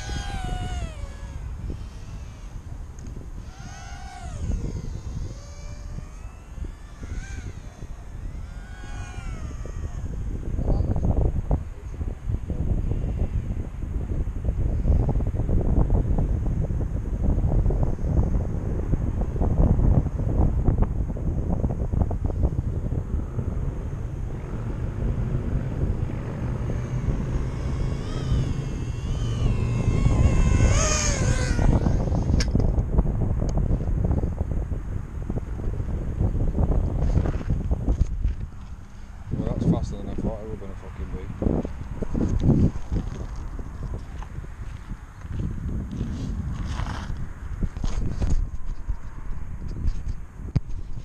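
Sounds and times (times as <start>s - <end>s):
quadcopter motors whining: 0.0s - 12.2s, 21.6s - 34.2s
wind buffeting microphone: 0.0s - 51.0s.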